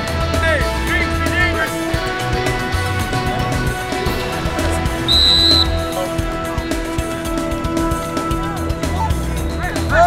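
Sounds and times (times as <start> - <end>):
background music: 0.0 - 10.0
high whistle blast: 4.1 - 6.8.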